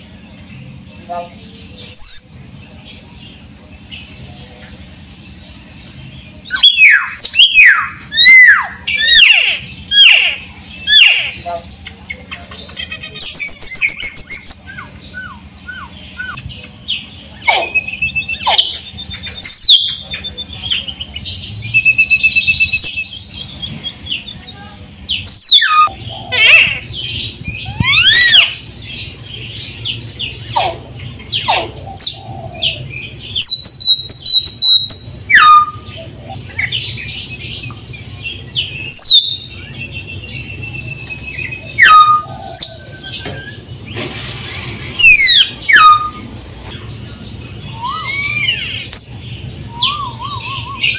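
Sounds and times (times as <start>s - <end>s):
myna bird singing: 0.0s - 50.9s.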